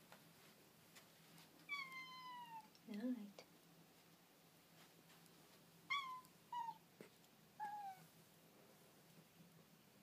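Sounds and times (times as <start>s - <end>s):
cat meowing: 1.7s - 2.8s, 5.9s - 6.9s, 7.6s - 8.1s.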